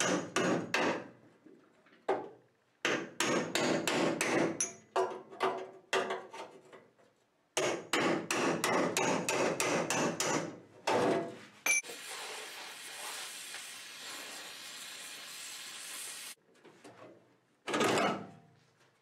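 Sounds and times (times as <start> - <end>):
hammer striking chisel on sheet metal: 0.0 - 1.1, 2.8 - 5.2, 7.6 - 11.1.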